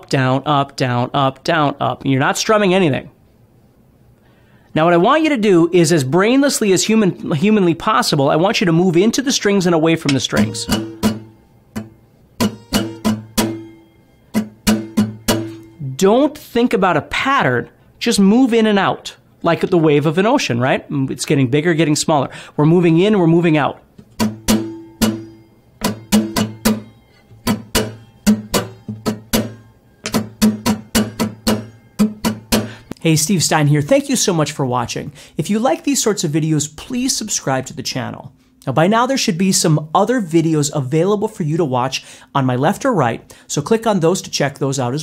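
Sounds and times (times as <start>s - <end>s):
acoustic guitar strumming: 9.8s - 16.5s, 24.0s - 33.4s.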